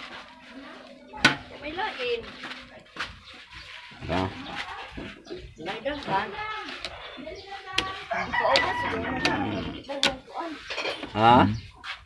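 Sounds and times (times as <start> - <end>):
rooster crowing: 8.1 - 9.8.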